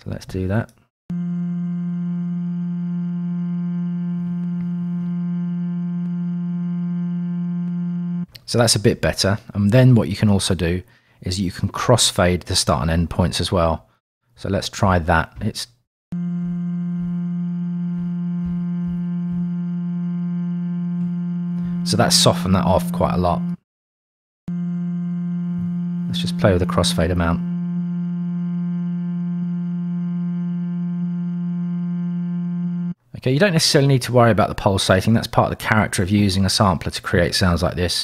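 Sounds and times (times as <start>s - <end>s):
faint low pulses: 1.1s - 8.3s, 16.1s - 23.6s, 24.5s - 33.0s
sustained sampled vocal tone: 1.1s - 8.3s, 16.2s - 23.6s, 24.5s - 33.0s
steady hum-like vocal tone: 25.5s - 30.2s.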